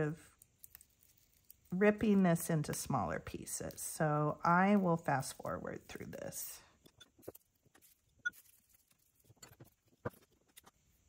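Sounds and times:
hands rustling wood fiber in glass: 0.0 - 6.4, 7.1 - 11.0.

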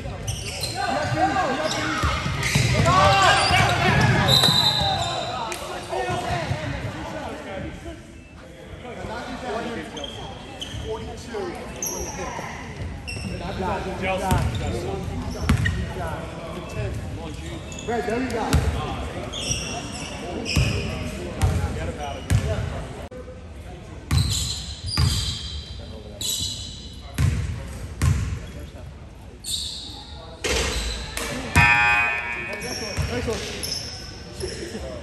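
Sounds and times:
voices echoing: 0.0 - 23.0, 29.4 - 35.0
shoe squeaks: 0.2 - 5.4, 9.9 - 11.0, 11.7 - 13.6, 19.3 - 21.0, 24.1 - 27.0, 29.4 - 34.9.

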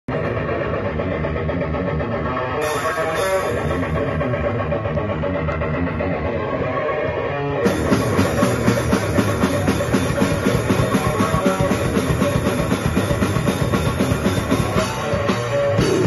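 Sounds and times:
death metal band playing live: 0.1 - 16.0
drum and cymbal hits: 7.6 - 16.0.

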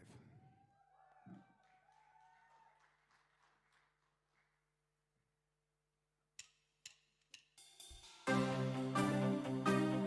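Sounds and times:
band playing: 8.2 - 10.0.

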